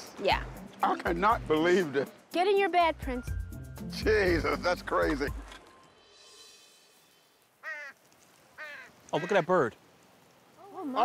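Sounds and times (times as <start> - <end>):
large bird calling: 7.5 - 9.5.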